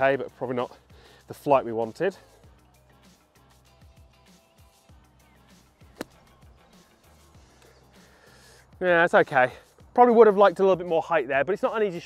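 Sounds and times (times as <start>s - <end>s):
faint music: 0.0s - 12.0s
golf club striking sand: 5.8s - 6.5s.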